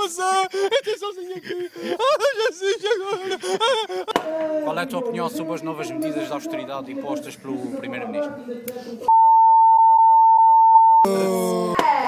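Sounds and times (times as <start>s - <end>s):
electronic censor bleep: 9.1s - 11.1s.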